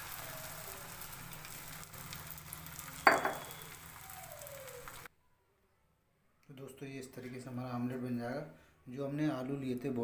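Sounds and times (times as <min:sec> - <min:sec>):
omelette sizzling in a pan: 0:00.0 - 0:05.1.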